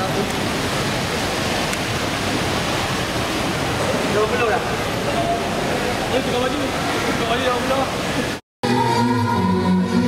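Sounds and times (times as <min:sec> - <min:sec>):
loud steady rushing noise: 0:00.0 - 0:10.0.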